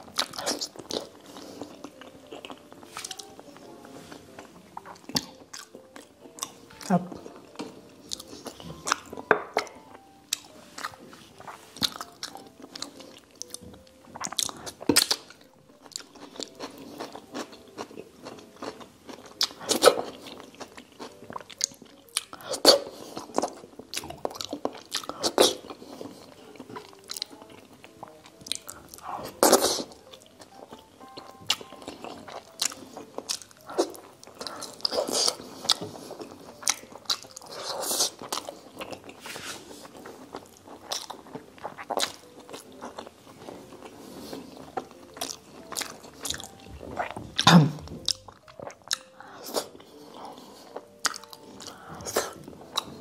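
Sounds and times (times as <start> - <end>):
person chewing food: 0.0 - 53.0.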